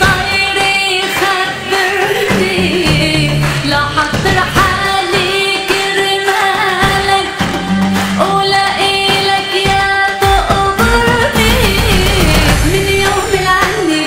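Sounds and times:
instrumental accompaniment with beat: 0.0 - 14.0
woman singing pop song: 0.0 - 14.0.

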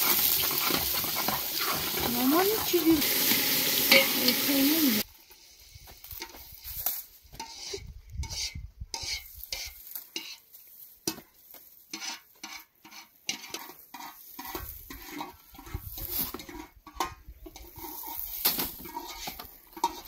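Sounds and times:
straw broom sweeping ground: 0.0 - 16.8, 17.6 - 20.0.

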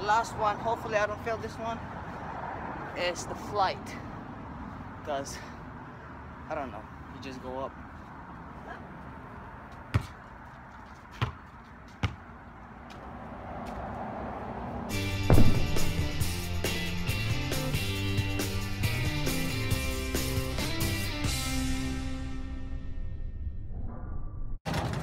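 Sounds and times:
basketball bouncing on court: 9.8 - 10.2, 11.1 - 12.4
music with drums: 15.0 - 22.0.

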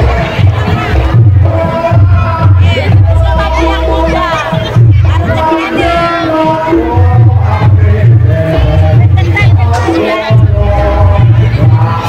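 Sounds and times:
heavy drum beat: 0.0 - 12.0.

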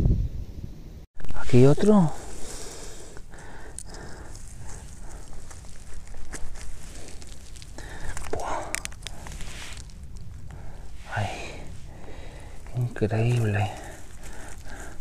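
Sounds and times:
pine needles crackling and rustling: 1.2 - 15.0.

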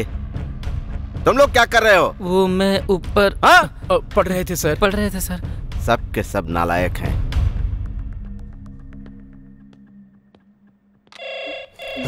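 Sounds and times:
telephone ringing: 11.1 - 12.0.

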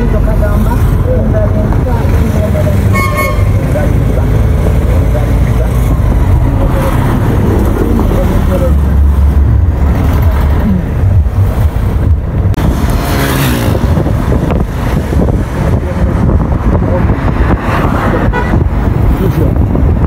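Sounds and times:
highway traffic rumble: 0.0 - 20.0
car horn toot: 2.9 - 3.6, 18.2 - 18.6.

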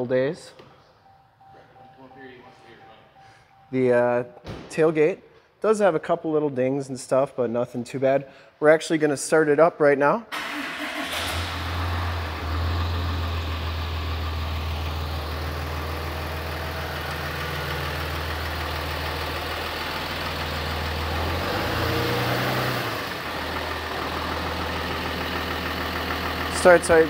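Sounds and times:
pickup engine starting and idling: 10.3 - 27.0.

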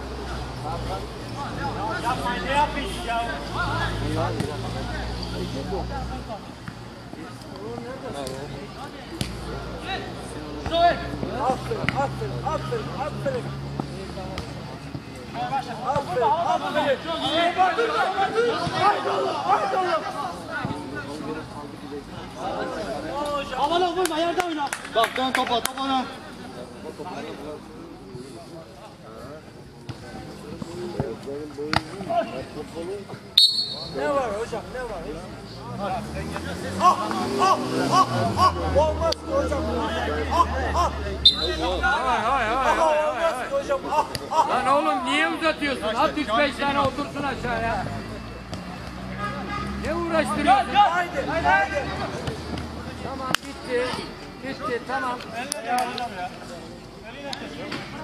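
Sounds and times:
players calling out: 0.1 - 28.3, 29.8 - 58.0
men shouting: 16.0 - 20.4, 36.0 - 47.7, 49.2 - 52.2.

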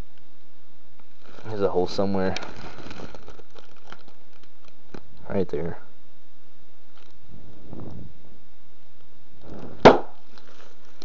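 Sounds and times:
sharp crack: 9.4 - 10.5.

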